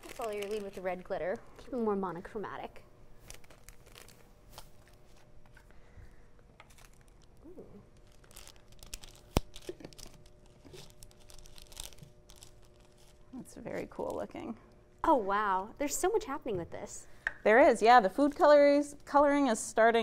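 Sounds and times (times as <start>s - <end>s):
plastic packets crinkling: 0.0s - 1.4s, 3.2s - 5.4s, 6.4s - 14.2s
plastic packets tearing: 0.0s - 1.4s, 3.2s - 5.3s, 6.6s - 13.3s.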